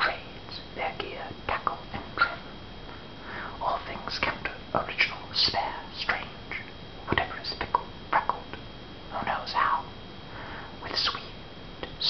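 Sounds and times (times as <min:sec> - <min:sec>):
man whispering: 0:00.0 - 0:02.4, 0:03.6 - 0:09.9, 0:10.8 - 0:12.0.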